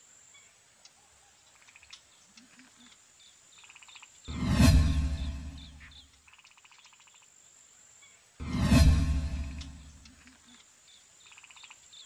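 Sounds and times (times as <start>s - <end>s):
deep boom: 4.3s - 5.8s, 8.4s - 10.0s.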